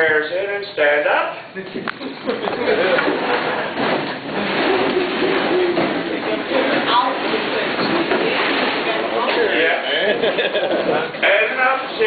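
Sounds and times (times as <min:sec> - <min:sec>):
people talking and laughing: 0:01.6 - 0:11.9
chairs scraping: 0:02.2 - 0:11.3.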